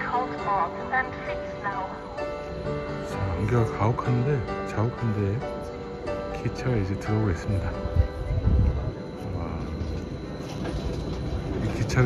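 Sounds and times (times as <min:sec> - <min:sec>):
electric railcar rumbling: 0:00.0 - 0:12.0
railcar drive whine: 0:00.0 - 0:12.0.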